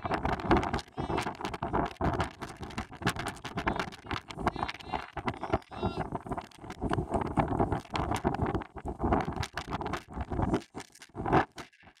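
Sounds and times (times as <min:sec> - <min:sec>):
rustling and scraping noise: 0:00.0 - 0:12.0.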